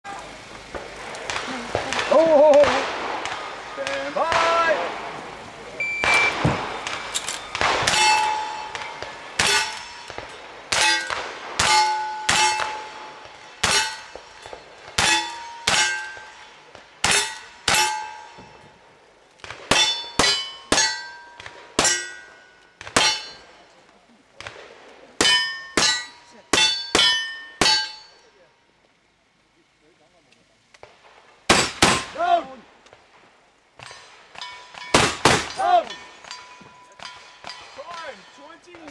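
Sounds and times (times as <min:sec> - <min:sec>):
gunshots: 0:00.8 - 0:05.3, 0:06.0 - 0:18.6, 0:31.0 - 0:32.4, 0:33.8 - 0:36.4
bullet clanging on steel target: 0:07.1 - 0:12.9.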